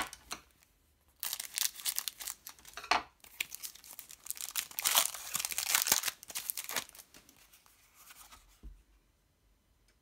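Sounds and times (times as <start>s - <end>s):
foil wrapper crinkling and rustling: 1.2s - 7.6s.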